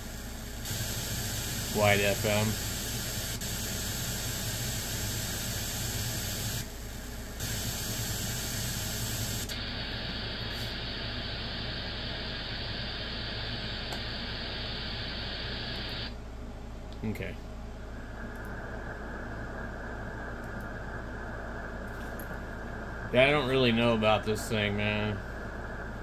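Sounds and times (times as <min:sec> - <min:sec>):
radio static hiss: 0:00.0 - 0:16.2, 0:17.0 - 0:26.0.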